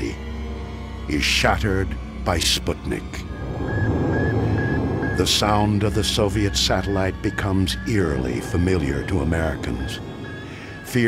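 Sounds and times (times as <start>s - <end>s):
low steady rumble: 2.9s - 10.8s
high radio beeps: 3.2s - 11.0s.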